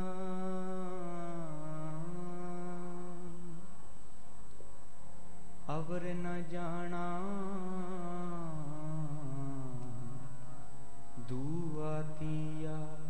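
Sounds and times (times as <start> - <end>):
man singing a slow chant: 0.0 - 3.9, 5.6 - 13.0.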